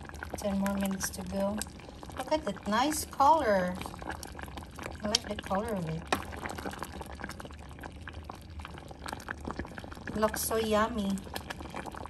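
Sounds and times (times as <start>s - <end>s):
thick liquid boiling in a pot: 0.0s - 12.0s.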